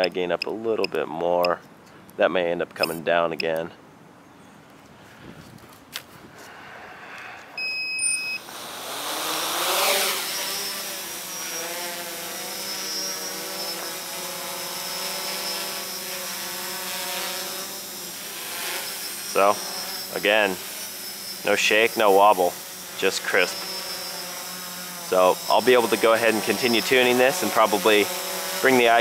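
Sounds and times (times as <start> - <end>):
short electronic beep: 7.6 - 8.4
drone motors whining: 7.6 - 29.0.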